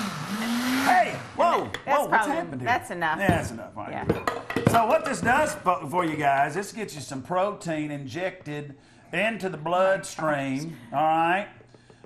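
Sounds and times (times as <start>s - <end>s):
blender motor winding down: 0.0s - 1.8s.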